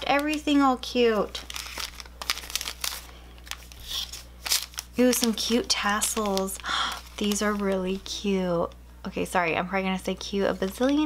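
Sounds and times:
cellophane wrapper crinkling: 0.0 - 8.8, 10.1 - 11.0.

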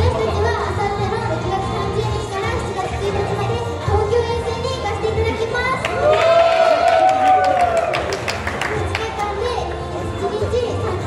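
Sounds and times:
bass of backing track: 0.0 - 11.0.

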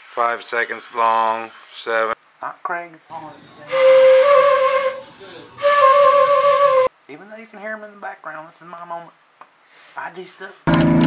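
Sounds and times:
concert flute long notes: 3.6 - 6.9
breath hiss: 9.6 - 10.1.

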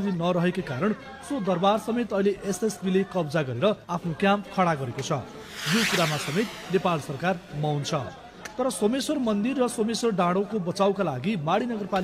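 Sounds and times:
hissing rush of noise: 5.4 - 8.1.

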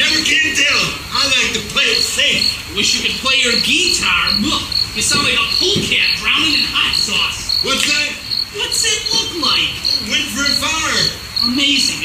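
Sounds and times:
cricket chirping: 0.0 - 12.0
men talking: 0.0 - 12.0.

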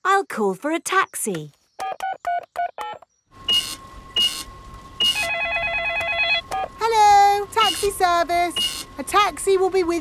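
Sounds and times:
telephone line hum: 1.8 - 10.0.

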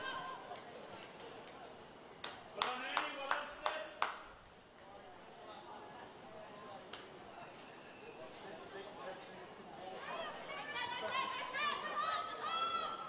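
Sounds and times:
hand claps: 2.2 - 4.3.

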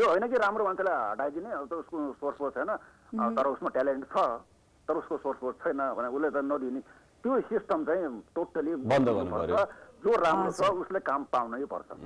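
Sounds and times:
person talking over telephone: 3.2 - 3.6.

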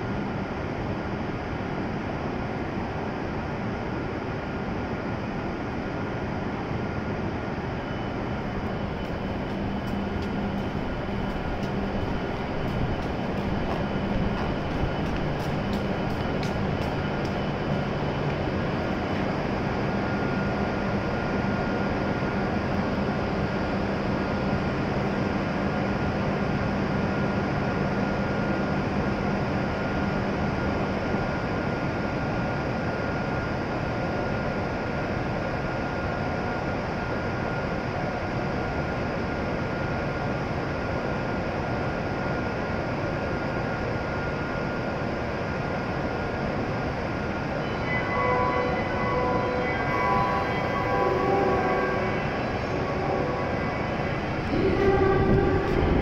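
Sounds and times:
train equipment humming: 0.4 - 31.0, 44.2 - 56.0
station noise: 7.6 - 21.0, 47.1 - 56.0.

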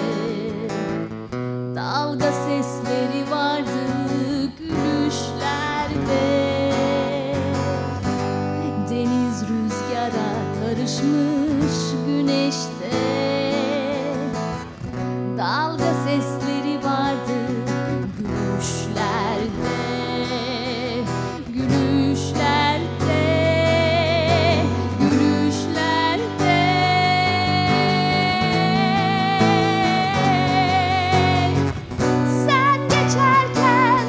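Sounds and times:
strummed acoustic guitar: 0.0 - 34.0
woman singing with vibrato: 0.0 - 34.0.

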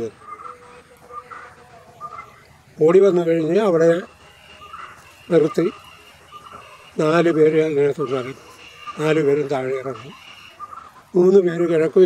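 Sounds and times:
faint bird calls: 0.0 - 12.0.

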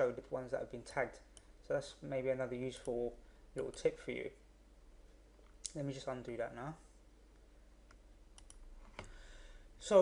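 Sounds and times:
computer mouse clicks: 7.8 - 9.1.

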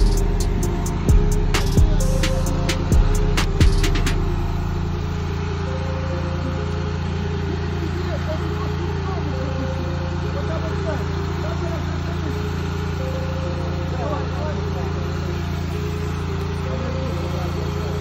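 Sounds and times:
drum thumps in music: 0.0 - 4.4
fire engine pump motor running: 0.0 - 18.0
faint voices: 6.0 - 18.0.

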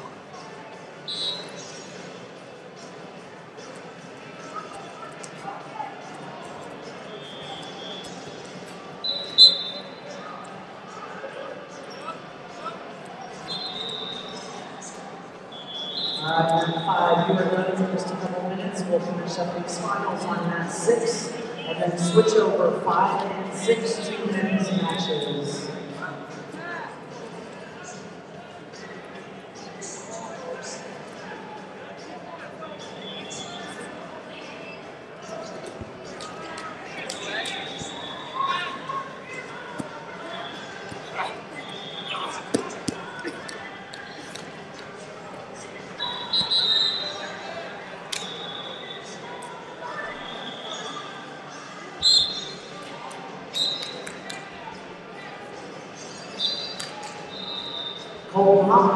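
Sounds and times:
voices murmuring in a hall: 0.0 - 58.9.

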